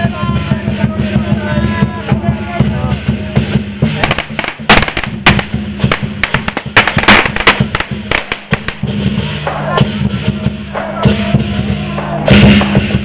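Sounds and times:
drumming: 0:00.0 - 0:13.0
firecrackers cracking: 0:03.8 - 0:09.2.

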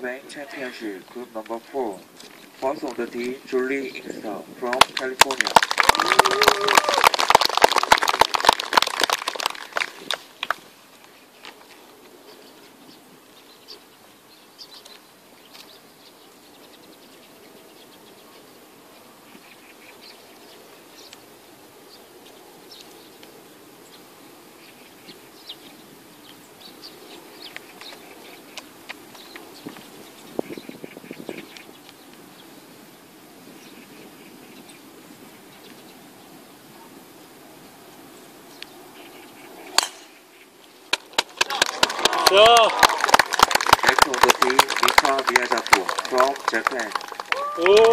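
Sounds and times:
spectators applauding: 0:05.0 - 0:10.6, 0:41.2 - 0:47.9.

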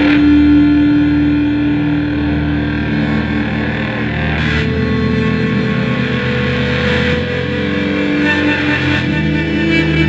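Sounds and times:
distorted electric guitar drone: 0:00.0 - 0:10.0.

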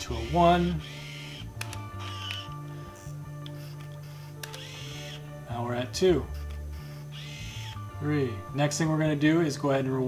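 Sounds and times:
camera motor whir: 0:00.0 - 0:05.3, 0:06.3 - 0:07.9
background music: 0:00.0 - 0:10.0
camera shutter clicks: 0:00.8 - 0:05.2.

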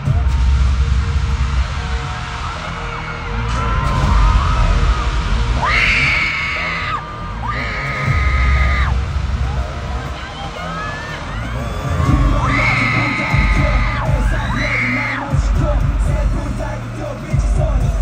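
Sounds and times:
audience screaming: 0:00.0 - 0:17.3
pop concert music with heavy bass: 0:00.0 - 0:18.0.

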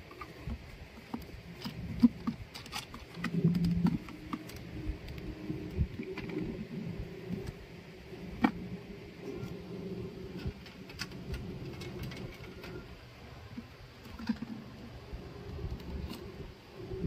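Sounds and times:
low drawn-out hum: 0:00.0 - 0:17.0.

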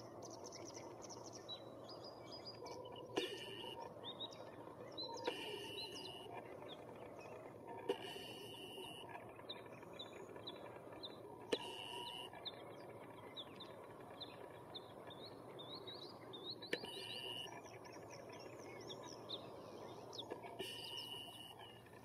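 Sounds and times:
low steady background hum: 0:00.0 - 0:22.0
small bird chirping: 0:00.0 - 0:22.0.

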